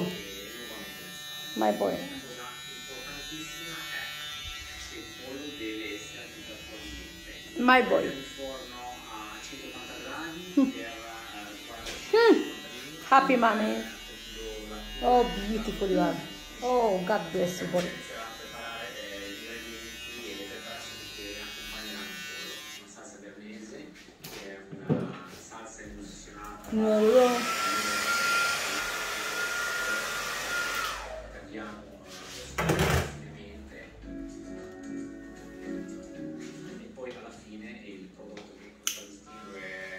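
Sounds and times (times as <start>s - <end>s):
electric hair clippers buzzing: 0.0s - 22.9s, 26.7s - 31.2s.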